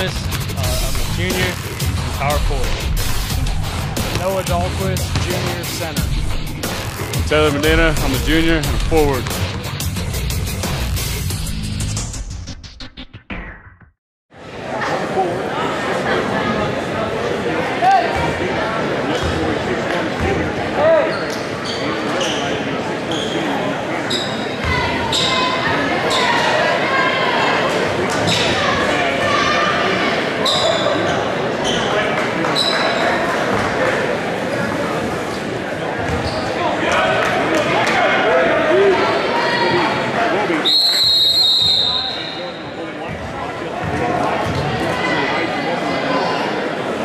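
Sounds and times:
crowd chatter: 0:00.0 - 0:11.2, 0:14.3 - 0:47.0
basketball bouncing: 0:05.0 - 0:05.6
sneakers squeaking on hardwood: 0:30.5 - 0:32.0, 0:36.0 - 0:36.6
referee's whistle blast: 0:40.6 - 0:42.6.

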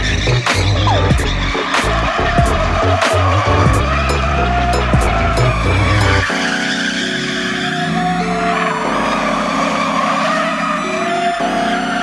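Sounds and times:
background music with deep bass: 0:00.0 - 0:12.0.

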